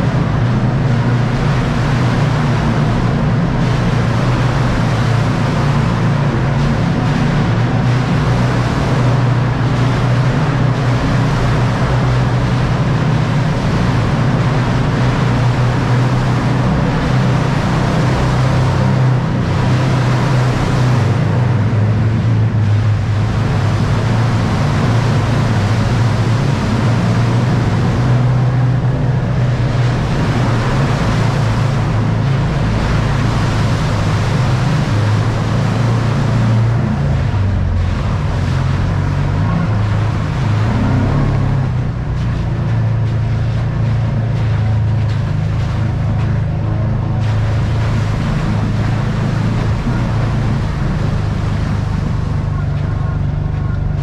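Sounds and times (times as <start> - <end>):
tyres throwing water and mud: 0.0 - 54.0
vehicle engine running: 0.0 - 54.0.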